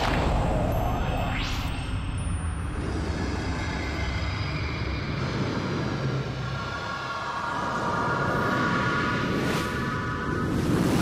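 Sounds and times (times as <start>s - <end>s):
deep rumbling drone: 0.0s - 10.8s.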